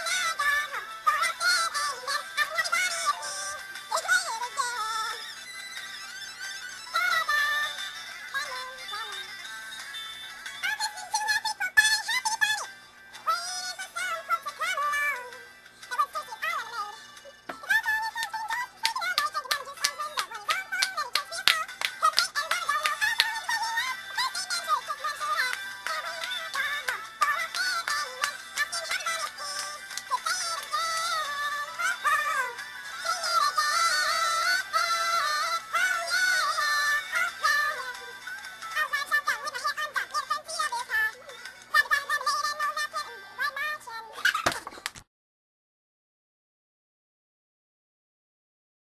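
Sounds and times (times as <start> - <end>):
high synthetic sung vocal: 0.0 - 5.2, 17.6 - 38.1
girl singing pitch-altered: 0.0 - 5.3, 6.9 - 9.3, 10.6 - 38.1, 38.7 - 44.2
music: 0.0 - 44.6.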